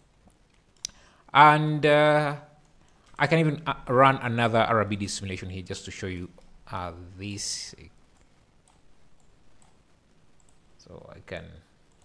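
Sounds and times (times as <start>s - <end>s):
computer mouse clicks: 8.1s - 9.8s, 10.4s - 10.6s.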